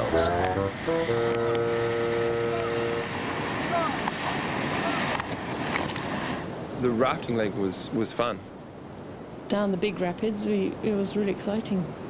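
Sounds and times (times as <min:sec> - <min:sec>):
steady held tone: 0:00.0 - 0:03.4
whitewater rapids rushing: 0:00.0 - 0:06.5
paddlers shouting: 0:01.2 - 0:05.2.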